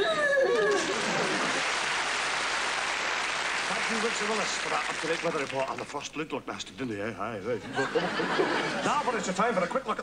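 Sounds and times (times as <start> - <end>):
audience applause: 0.5 - 5.9.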